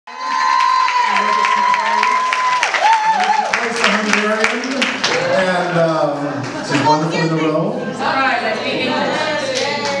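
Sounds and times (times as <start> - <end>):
high-pitched cheer: 0.1 - 4.0
audience applauding and cheering: 0.1 - 6.8.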